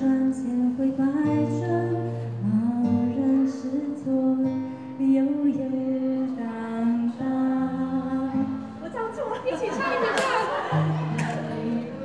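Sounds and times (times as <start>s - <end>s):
woman singing into microphone: 0.0s - 9.0s
acoustic guitar: 0.0s - 12.0s.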